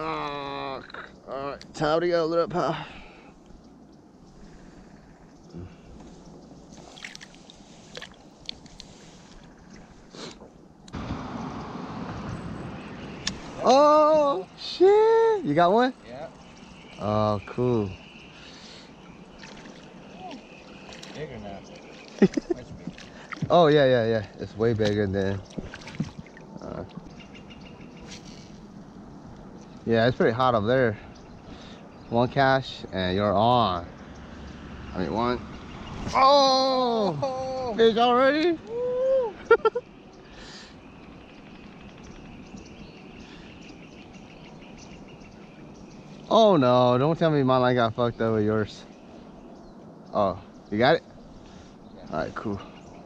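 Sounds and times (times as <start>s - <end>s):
faint bird chirps: 2.9s - 8.3s, 11.4s - 23.6s, 24.4s - 30.2s, 30.8s - 47.3s
water lapping against kayak hull: 5.7s - 10.5s, 18.0s - 29.9s.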